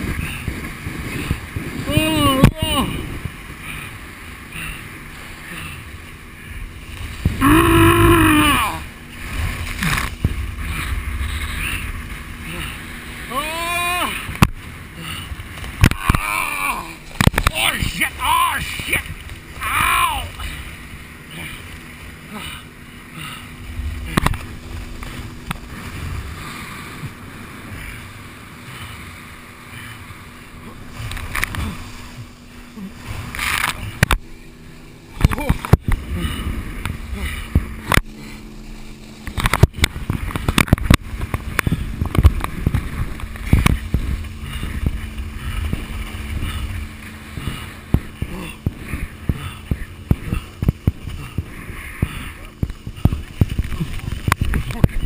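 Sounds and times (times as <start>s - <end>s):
water rushing: 0.0s - 55.0s
sharp knocks and splashes: 14.2s - 16.3s, 17.0s - 18.0s.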